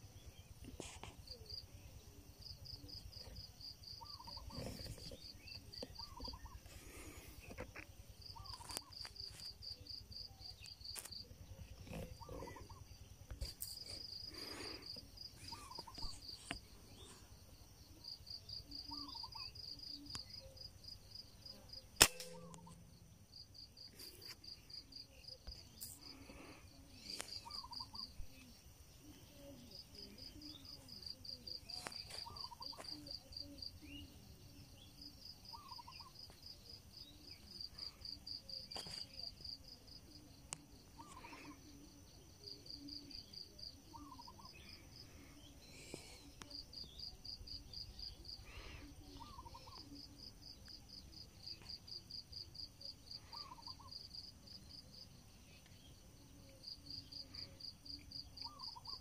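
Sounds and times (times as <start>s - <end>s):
bird chirps: 0.1s - 39.6s, 41.0s - 50.6s, 53.1s - 59.0s.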